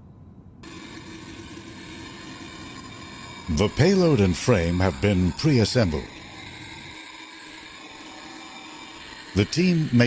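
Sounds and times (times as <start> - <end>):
faint hum: 0.0 - 10.0
steady hiss: 0.6 - 10.0.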